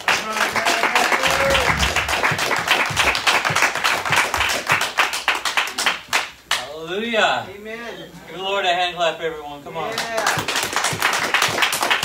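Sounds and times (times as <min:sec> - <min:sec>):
congregation applauding: 0:00.0 - 0:06.6, 0:09.9 - 0:12.0.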